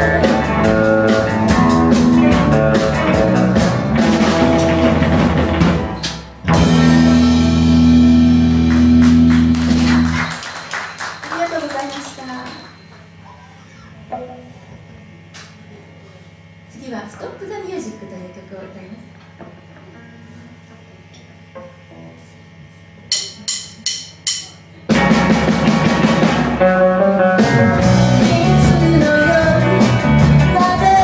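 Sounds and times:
rock band held final chord: 0.0s - 10.3s
audience applause: 8.6s - 12.6s.

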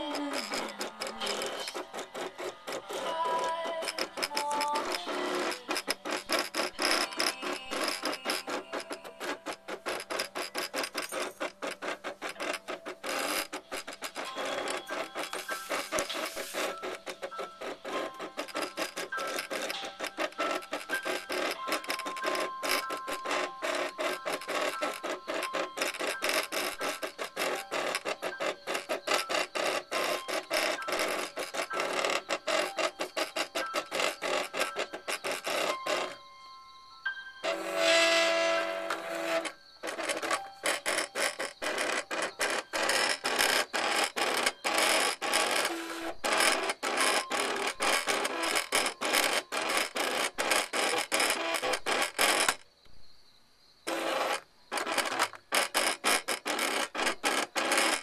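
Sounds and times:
cutting machine motors stuttering: 0.0s - 36.2s, 37.4s - 52.6s, 53.9s - 58.0s.

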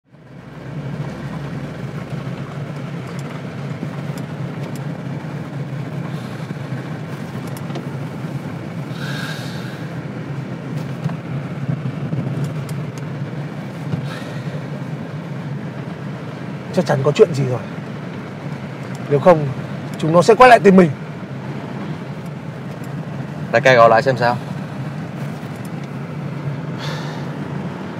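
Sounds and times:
car road and engine drone: 0.0s - 27.9s.

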